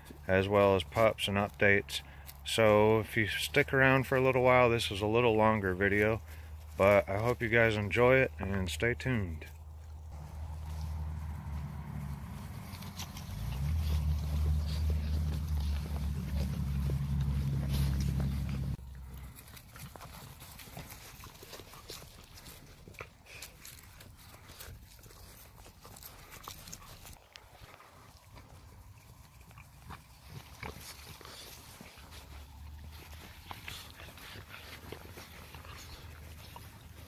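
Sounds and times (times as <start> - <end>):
puppy paws on grass: 0.0 - 37.0.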